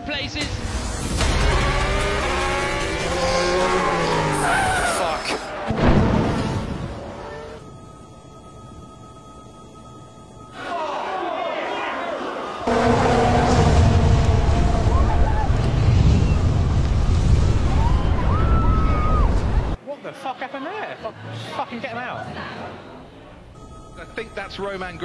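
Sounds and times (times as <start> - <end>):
car crashing into barrier: 5.7 - 6.9
voices shouting: 10.6 - 16.4
fire rushing noise: 12.7 - 19.8.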